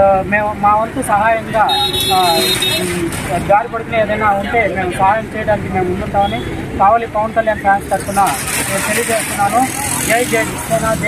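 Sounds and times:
person speaking: 0.0 - 11.0
traffic noise: 0.0 - 11.0.

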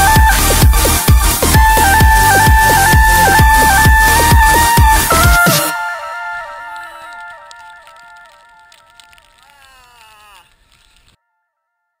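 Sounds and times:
synth melody of stepped notes: 0.0 - 9.0.

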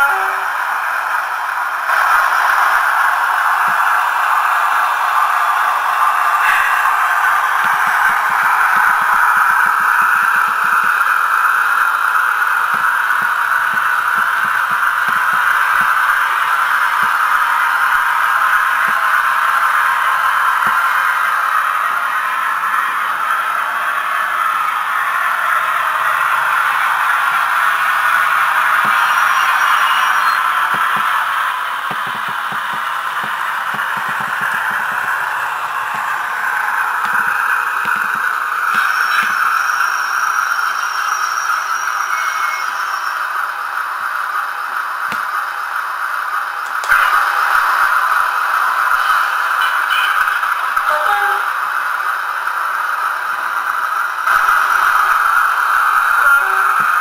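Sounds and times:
model train engine sound: 0.0 - 57.0.

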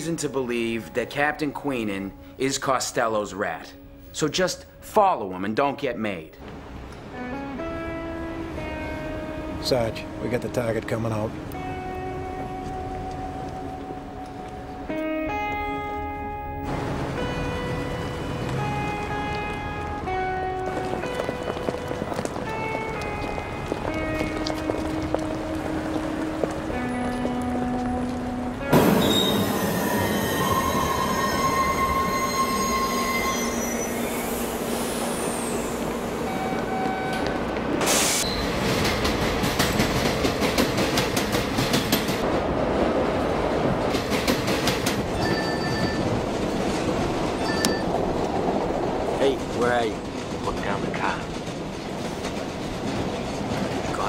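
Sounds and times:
music of held notes: 6.9 - 28.8
train wheels clattering over joints: 18.5 - 27.8, 38.5 - 42.2, 43.8 - 54.0
train wheels squealing on rails: 28.8 - 39.0, 45.1 - 46.2.

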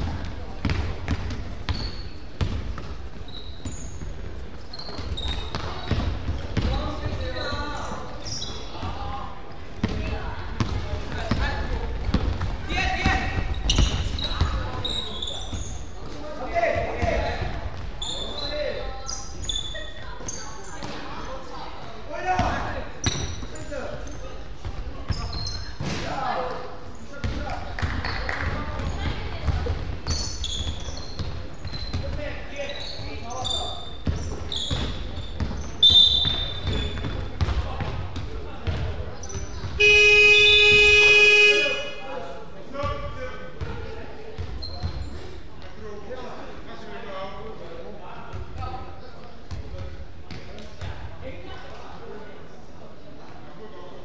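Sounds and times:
people shouting and chattering: 0.0 - 54.0
basketball bouncing on hardwood: 0.2 - 1.8.

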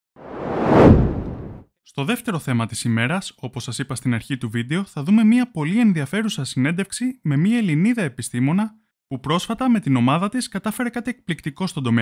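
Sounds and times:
whoosh: 0.2 - 1.6.

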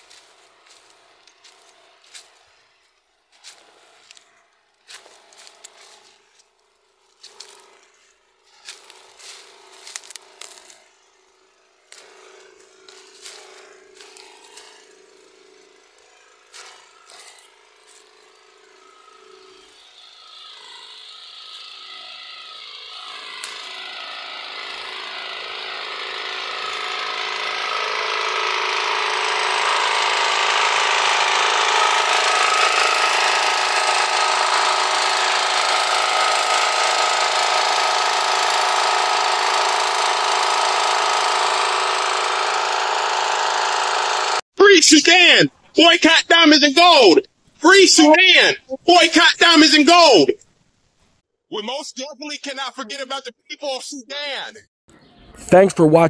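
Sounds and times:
portable generator running: 0.0 - 2.8, 3.4 - 50.4, 55.4 - 56.0.

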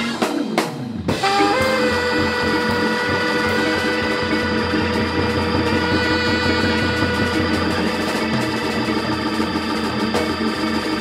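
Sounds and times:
drums pulse: 0.0 - 11.0
electric guitar: 0.0 - 11.0
hammond organ: 0.0 - 11.0
alto saxophone long note: 1.1 - 8.7.

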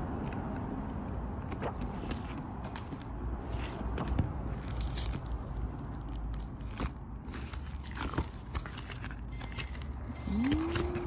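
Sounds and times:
plastic wrapping crinkling: 4.5 - 11.0.

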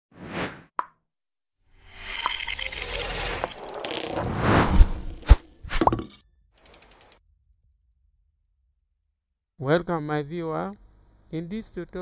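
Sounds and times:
swelling whoosh: 2.9 - 5.7.

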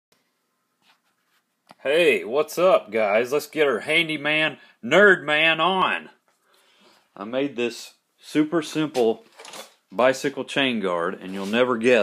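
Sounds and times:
man speaking: 1.8 - 6.2, 7.2 - 9.3, 9.9 - 12.0.

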